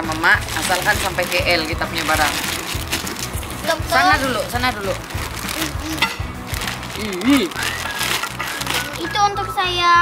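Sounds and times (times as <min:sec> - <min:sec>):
plastic bag crinkling: 0:00.0 - 0:09.2.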